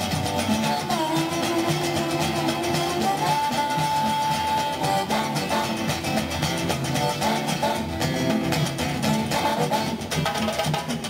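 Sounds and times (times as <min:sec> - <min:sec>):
hand drum rhythm: 0:00.0 - 0:11.0
mandolin: 0:00.0 - 0:11.0
strummed acoustic guitar: 0:00.0 - 0:11.0.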